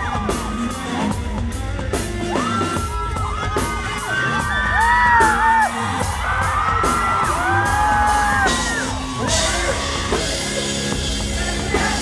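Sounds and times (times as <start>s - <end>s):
crowd whooping and singing along: 0.0s - 12.0s
live rock music: 0.0s - 12.0s.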